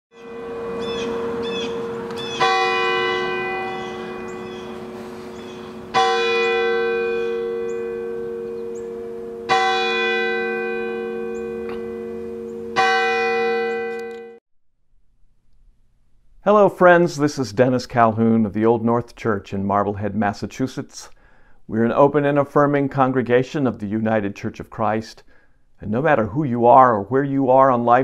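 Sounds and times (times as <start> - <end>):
church bell tolling: 0.1 - 14.4.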